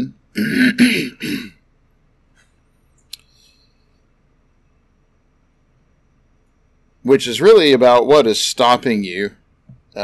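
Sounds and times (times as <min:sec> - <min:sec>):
man clearing his throat: 0:00.4 - 0:01.6.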